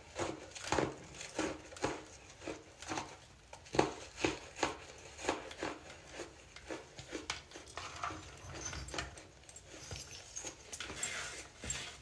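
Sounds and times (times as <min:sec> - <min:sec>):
crunching and chewing: 0:00.0 - 0:11.5.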